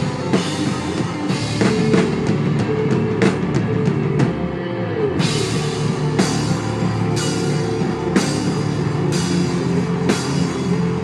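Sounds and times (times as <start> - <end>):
heavy rock band playing live: 0.0 - 11.0.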